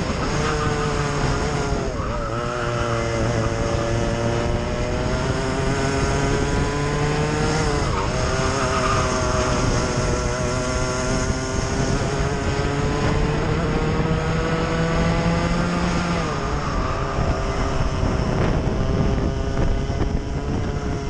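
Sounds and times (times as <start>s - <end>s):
racing kart engine running hard: 0.0s - 21.0s.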